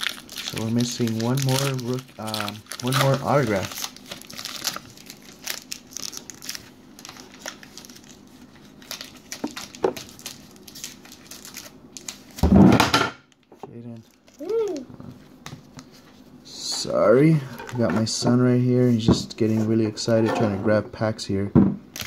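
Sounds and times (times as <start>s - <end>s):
cards rustling: 0.0s - 12.4s
foil wrapper crinkling and tearing: 0.0s - 12.4s, 13.8s - 14.8s.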